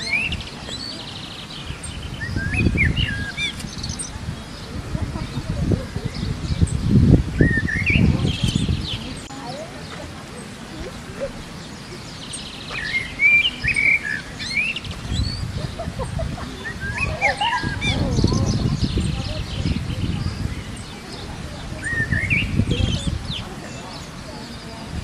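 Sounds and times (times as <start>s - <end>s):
small birds chirping: 0.0s - 25.0s.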